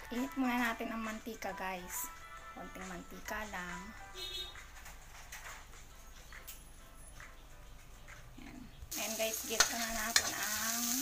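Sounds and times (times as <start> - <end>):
food sizzling in hot oil: 8.9 - 11.0.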